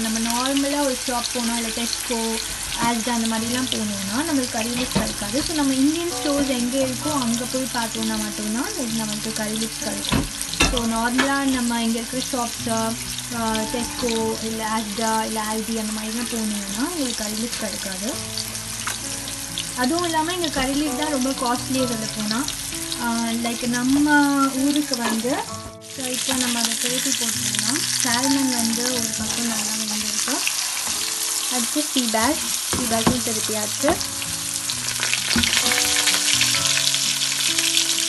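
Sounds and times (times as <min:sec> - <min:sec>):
fish sizzling in oil: 0:00.0 - 0:38.0.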